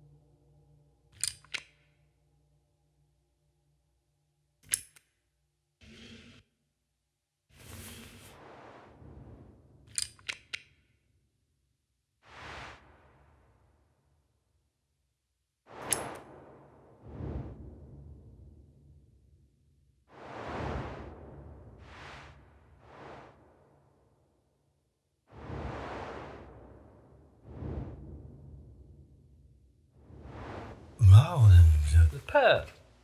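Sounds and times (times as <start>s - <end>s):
toggle clamp metal clicks: 1.2s - 1.7s, 4.6s - 5.1s.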